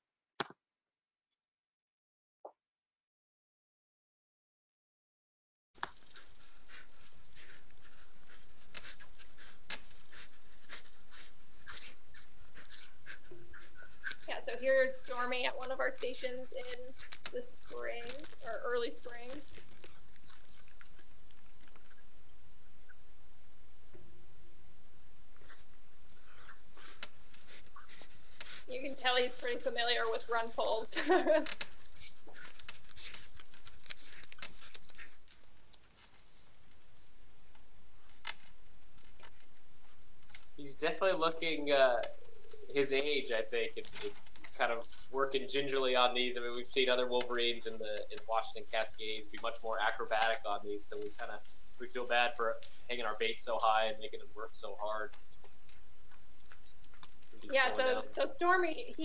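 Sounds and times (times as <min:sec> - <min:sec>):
animal scratching and tearing: 0:05.8 - 0:23.0, 0:25.4 - 0:59.0
steady hiss: 0:25.3 - 0:59.0.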